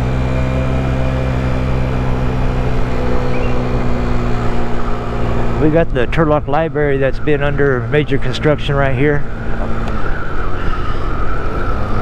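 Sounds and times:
scooter engine running: 0.0s - 5.8s.

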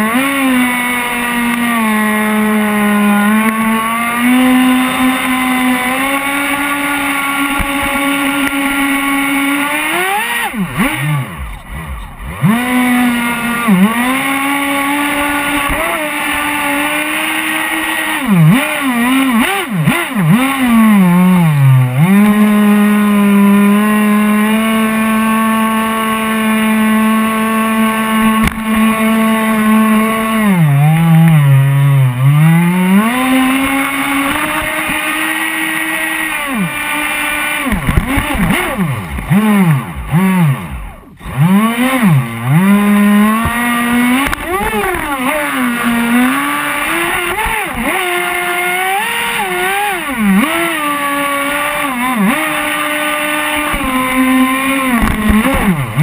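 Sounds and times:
toy boat motor whining: 0.0s - 56.0s.

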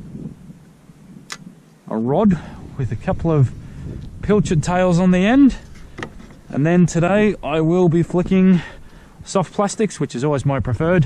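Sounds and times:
faint wind: 0.0s - 11.0s.

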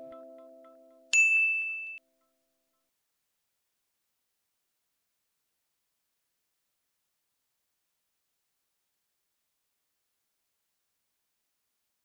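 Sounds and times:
bright bell ding: 1.1s - 2.0s.

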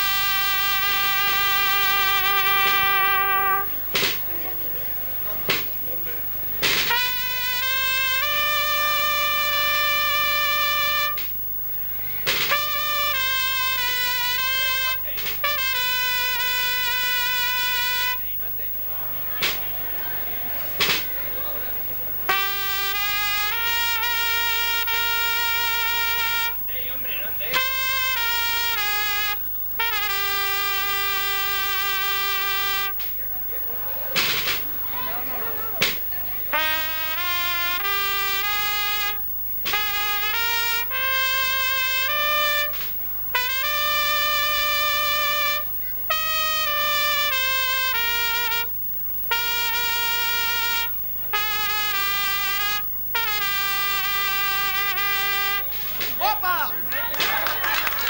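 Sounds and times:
solo trumpet slow melody: 0.0s - 18.4s, 22.1s - 33.1s, 34.0s - 58.0s.

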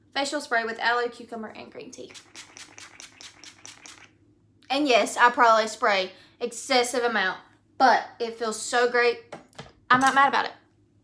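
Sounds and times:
spray bottle hissing sprays: 2.1s - 4.1s.

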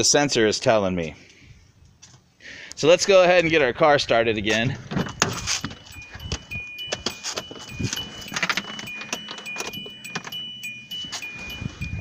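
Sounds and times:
car keys jangling: 4.4s - 12.0s
two-pitch electronic chime: 5.0s - 12.0s.

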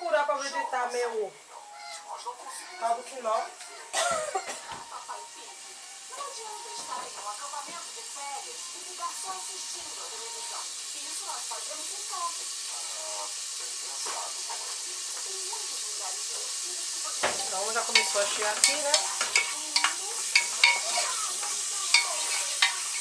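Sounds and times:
oil hissing and sizzling: 0.0s - 23.0s.

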